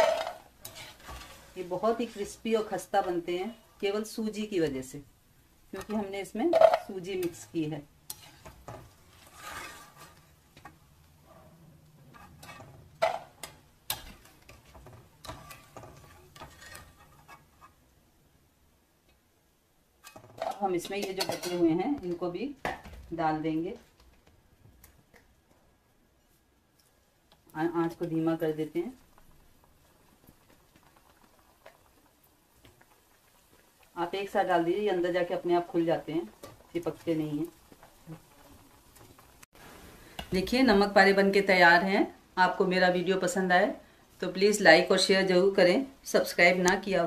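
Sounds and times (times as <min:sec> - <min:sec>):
metal spoon scraping pan: 0:00.0 - 0:03.3, 0:05.8 - 0:17.8, 0:20.0 - 0:21.8
faint frying sizzle: 0:00.0 - 0:47.0.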